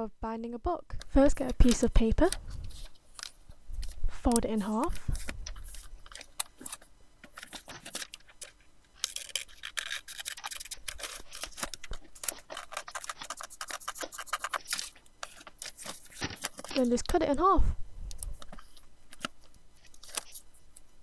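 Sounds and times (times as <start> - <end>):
paper rustling and scraping: 2.6 - 4.0, 4.6 - 17.2, 18.3 - 20.6.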